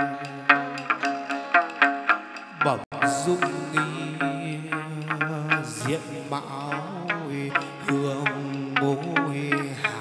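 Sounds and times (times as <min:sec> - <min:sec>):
plucked string notes: 0:00.0 - 0:10.0.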